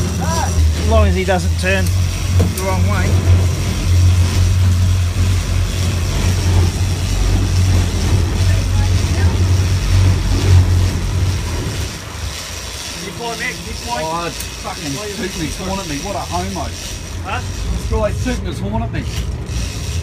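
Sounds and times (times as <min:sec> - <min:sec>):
loud low ship drone: 0:00.0 - 0:20.0.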